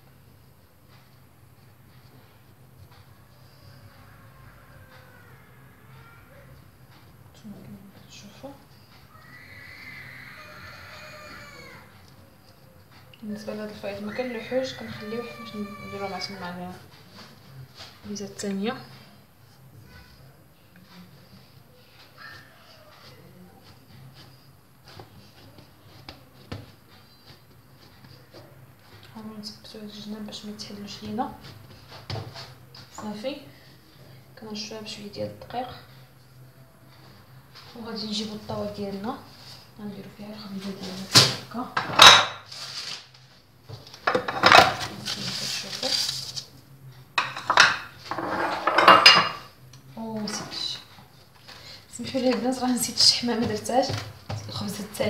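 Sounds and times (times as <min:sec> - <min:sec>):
metal baking tray on stone counter: 0:06.9 - 0:19.0, 0:37.6 - 0:55.0
dishes knocking: 0:44.1 - 0:44.9, 0:47.2 - 0:49.5.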